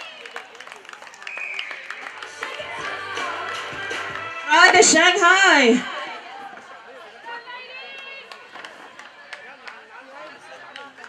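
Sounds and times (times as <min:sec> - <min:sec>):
overlapping voices chattering and calling: 0:00.0 - 0:11.0.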